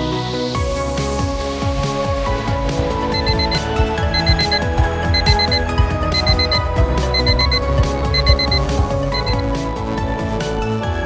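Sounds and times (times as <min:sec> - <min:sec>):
electronic background music: 0:01.8 - 0:11.0
electronic alarm beeping: 0:03.1 - 0:09.5.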